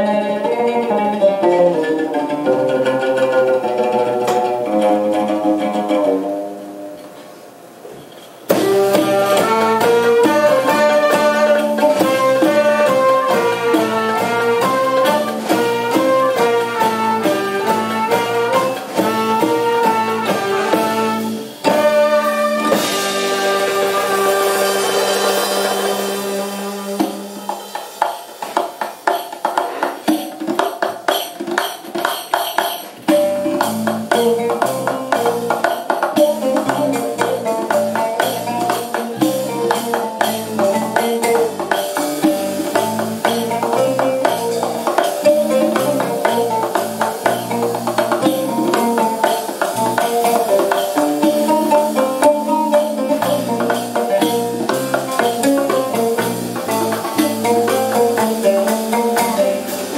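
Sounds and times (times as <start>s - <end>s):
hand percussion: 0.0s - 7.2s, 8.0s - 59.9s
live jazz ensemble music: 0.0s - 59.9s.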